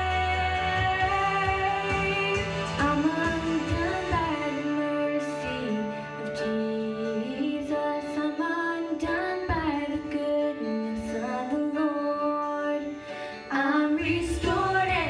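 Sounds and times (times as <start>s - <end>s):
girl singing gospel song: 0.0s - 15.0s
instrumental accompaniment: 0.0s - 15.0s.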